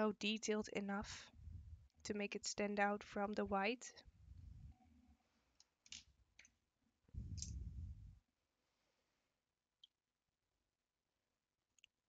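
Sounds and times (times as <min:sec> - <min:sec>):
low handling rumble: 0:01.3 - 0:01.9, 0:07.2 - 0:08.2.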